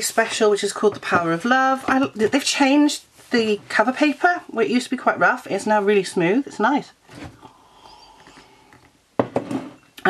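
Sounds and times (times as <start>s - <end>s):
person sipping a drink: 7.3s - 9.0s.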